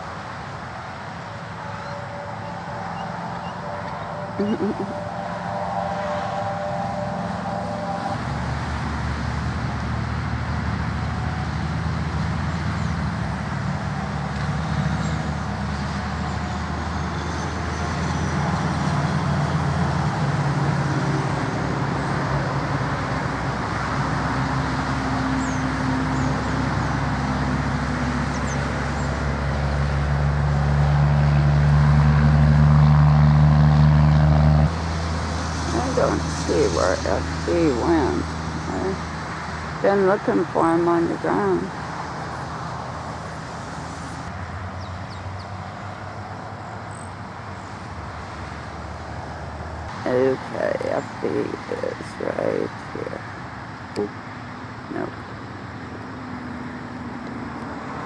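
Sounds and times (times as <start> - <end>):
engine hum: 0.0 - 58.0
road traffic noise: 0.0 - 58.0.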